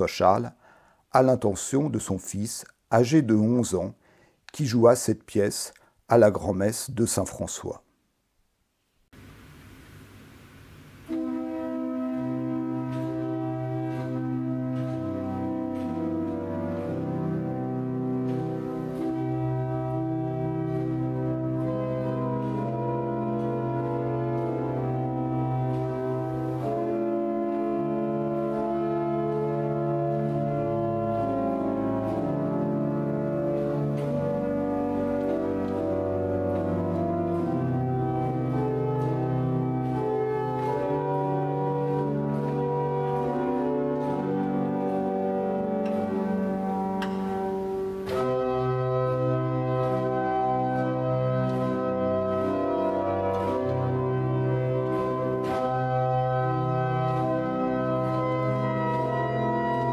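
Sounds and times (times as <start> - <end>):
pipe organ sustained chords: 10.4 - 59.9.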